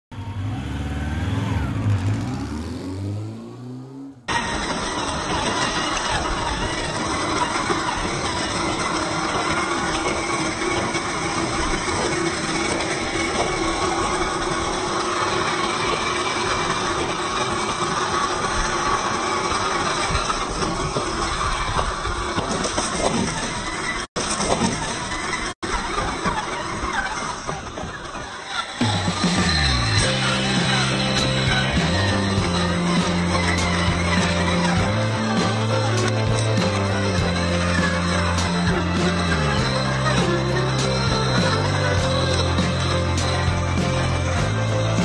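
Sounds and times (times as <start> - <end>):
low intro sound with falling tones: 0.1 - 5.5.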